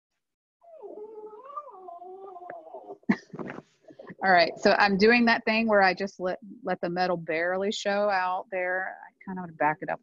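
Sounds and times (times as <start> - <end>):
dog whining: 0.6 - 3.2.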